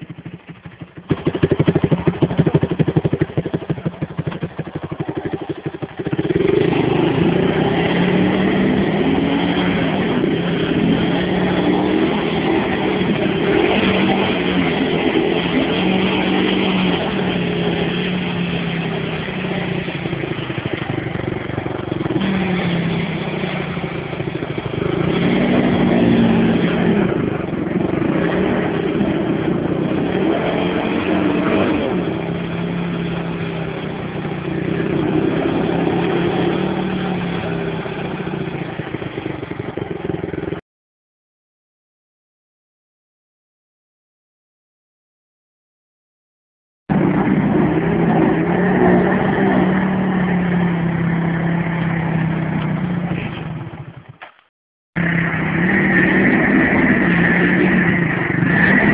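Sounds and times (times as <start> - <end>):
quad engine revving: 0.0 - 40.6, 46.9 - 54.4, 55.0 - 58.9
wheels spinning in mud: 0.0 - 40.6, 46.9 - 58.9.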